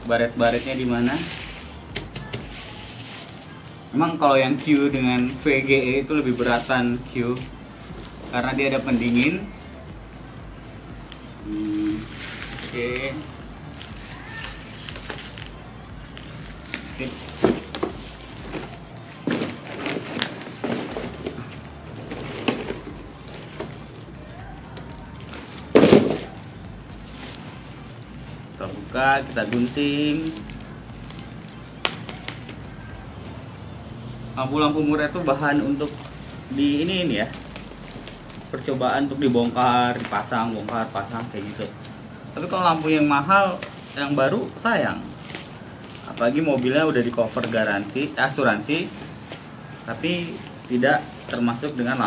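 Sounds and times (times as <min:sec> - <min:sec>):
plastic wrapping crinkling: 0:00.0 - 0:33.8, 0:34.4 - 0:52.0
cardboard box rustling: 0:16.4 - 0:24.1.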